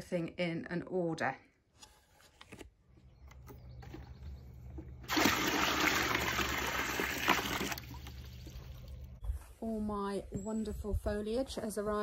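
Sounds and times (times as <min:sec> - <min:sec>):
water running into plastic container: 0:04.8 - 0:09.0.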